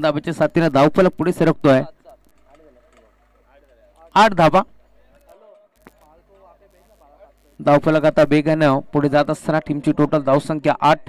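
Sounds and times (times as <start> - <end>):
distant voices: 1.9 - 7.6.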